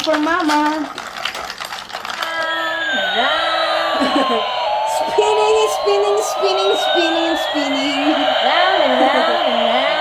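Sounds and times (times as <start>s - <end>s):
toy airplane electronic tones: 2.2s - 10.0s.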